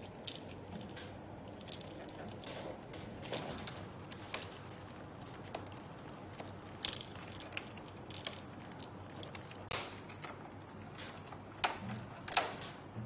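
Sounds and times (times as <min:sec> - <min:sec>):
plastic parts clicking and snapping: 0:00.0 - 0:12.9.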